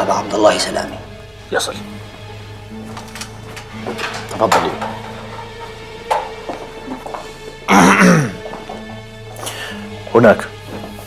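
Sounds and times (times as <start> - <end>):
low background music: 0.0 - 11.0
man clearing his throat: 7.7 - 8.4.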